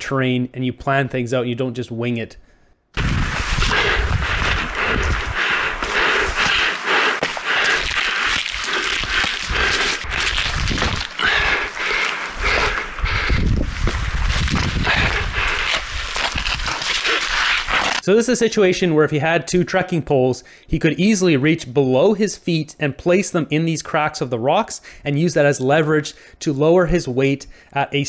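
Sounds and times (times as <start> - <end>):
person breathing: 2.4 - 17.4, 20.4 - 20.7, 24.8 - 25.1, 26.2 - 26.4, 27.5 - 27.8
wind rumble on microphone: 3.0 - 6.4, 9.0 - 11.7, 12.4 - 16.8
hands and shoes scuffing rock: 5.8 - 11.2.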